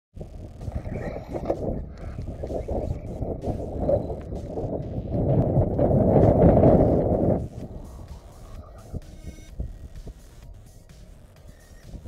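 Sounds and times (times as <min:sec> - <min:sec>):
wind buffeting microphone: 0:00.2 - 0:12.0.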